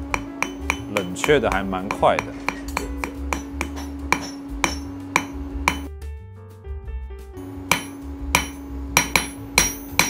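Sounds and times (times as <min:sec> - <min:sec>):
hammer striking metal on anvil: 0:00.0 - 0:05.9, 0:07.6 - 0:10.0.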